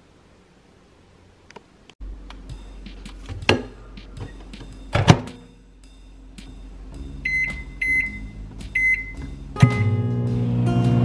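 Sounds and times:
microwave humming: 2.0s - 11.0s
microwave door shutting: 4.9s - 5.4s
microwave keypad beeps: 7.2s - 10.0s
acoustic guitar music: 7.6s - 11.0s.

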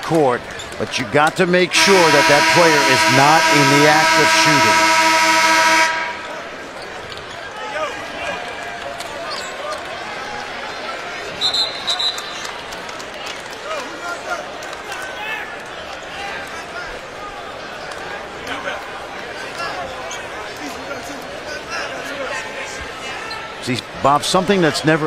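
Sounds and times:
crowd chattering and murmuring: 0.0s - 25.0s.

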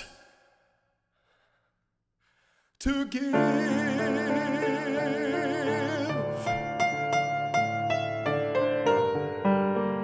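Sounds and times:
singer breathing in: 0.0s - 2.8s.

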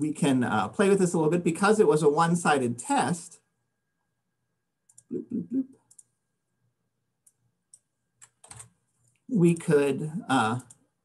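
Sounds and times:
computer mouse clicking: 4.9s - 5.1s, 5.8s - 6.2s, 7.2s - 9.7s, 10.4s - 10.8s.

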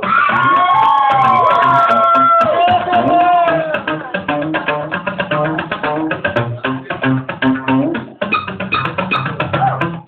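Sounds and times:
audience cheering and whooping: 0.0s - 3.8s
live music with pulsing bass beat: 0.0s - 10.0s.

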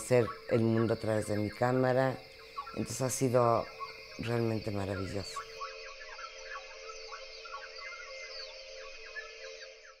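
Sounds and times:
faint bird-like calls: 0.0s - 10.0s
steady droning tone: 0.0s - 10.0s.

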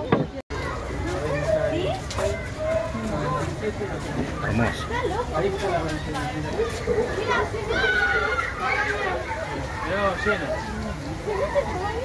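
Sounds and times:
crowd talking: 0.0s - 12.0s
children calling out: 0.5s - 3.5s, 4.3s - 12.0s.

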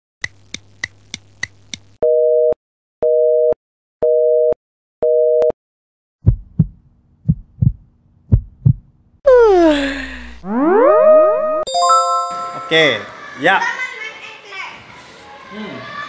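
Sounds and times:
low heartbeat-like thumps: 6.2s - 8.9s.

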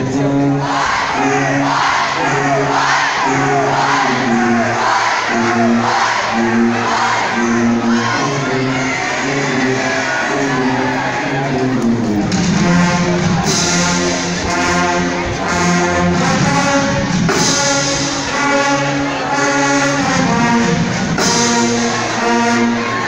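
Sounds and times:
brass band playing: 0.0s - 23.0s
crowd shouting and cheering: 0.0s - 23.0s.

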